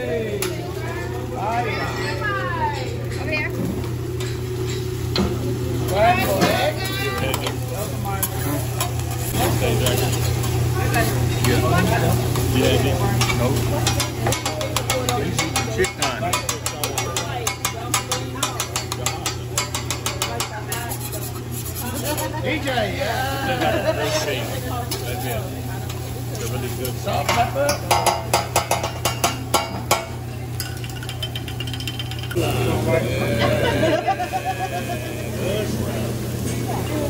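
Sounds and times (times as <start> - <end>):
diners chatting: 0.0 - 37.0
metal spatulas scraping on griddle: 13.2 - 22.7.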